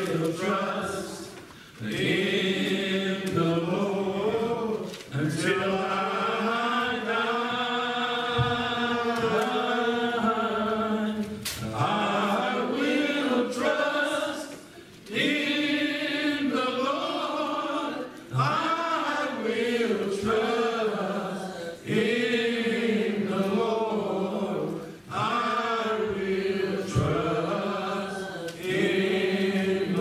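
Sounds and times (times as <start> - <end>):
men singing a slow hymn: 0.0 - 30.0.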